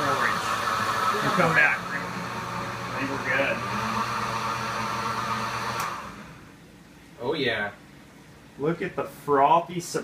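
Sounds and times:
blender running: 0:00.0 - 0:06.5
blender switch click: 0:05.7 - 0:06.0.

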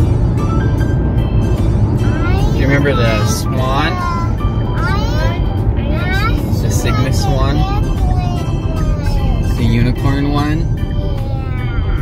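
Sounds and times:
car road rumble: 0:00.0 - 0:12.0
children's voices: 0:02.0 - 0:09.5, 0:11.0 - 0:12.0.

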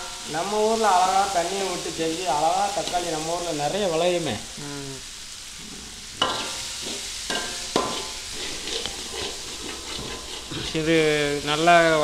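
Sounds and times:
vegetables sizzling in a wok: 0:00.0 - 0:12.0
spoon scraping a pan: 0:05.6 - 0:11.5
spoon clanking on metal: 0:06.2 - 0:06.6, 0:07.3 - 0:08.1.

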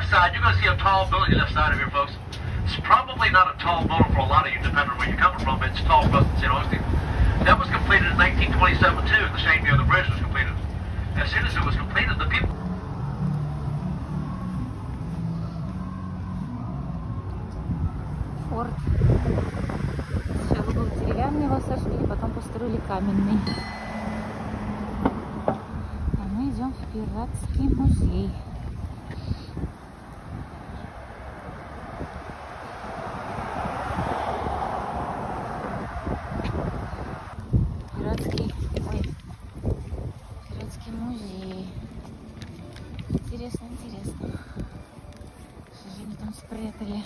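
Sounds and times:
trolley engine humming: 0:00.0 - 0:37.4
wind buffeting microphone: 0:00.2 - 0:13.2, 0:14.2 - 0:46.8.

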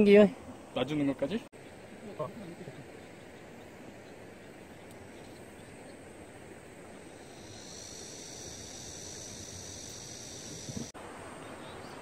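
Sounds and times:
faint outdoor background hiss: 0:00.0 - 0:12.0
high-pitched insect buzz: 0:07.1 - 0:10.9.

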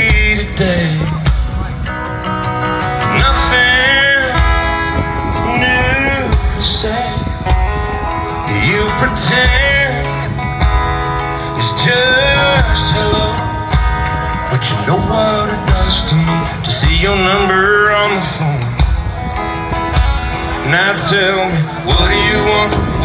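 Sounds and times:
man singing: 0:00.0 - 0:19.4, 0:20.2 - 0:23.0
country band playing ballad: 0:00.0 - 0:23.0.

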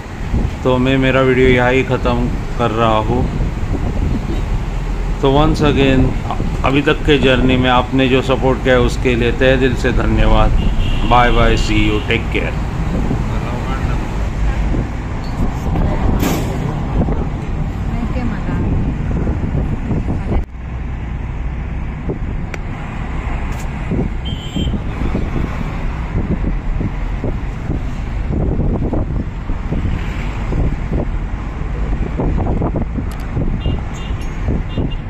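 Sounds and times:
car road noise from inside: 0:00.0 - 0:35.0.

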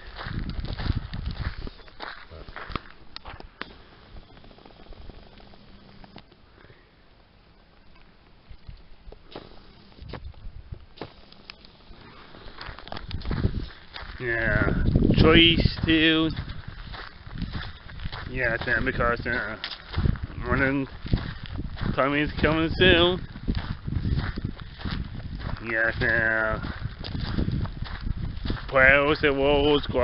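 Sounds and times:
footsteps on gravel: 0:00.0 - 0:06.4, 0:08.0 - 0:30.0
low rumbling microphone noise: 0:00.0 - 0:30.0.

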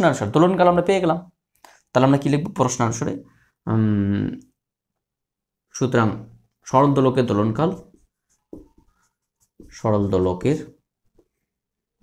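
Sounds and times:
man speaking: 0:00.0 - 0:04.6, 0:05.7 - 0:08.0, 0:09.6 - 0:10.8
marker pen writing on whiteboard: 0:07.2 - 0:11.4.

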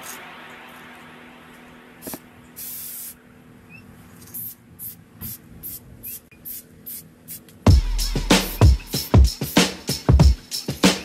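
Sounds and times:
spray paint can hissing: 0:02.0 - 0:03.2, 0:04.3 - 0:07.5.

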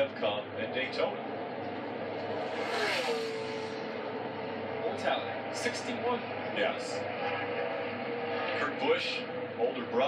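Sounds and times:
race car engine passing: 0:01.2 - 0:09.8.

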